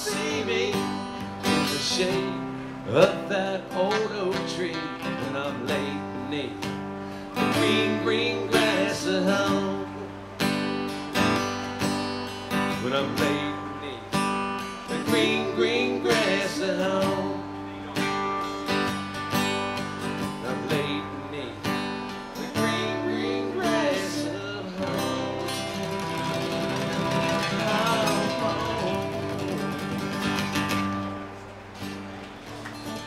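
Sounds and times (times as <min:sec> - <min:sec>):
acoustic guitars strumming: 0:00.0 - 0:33.0.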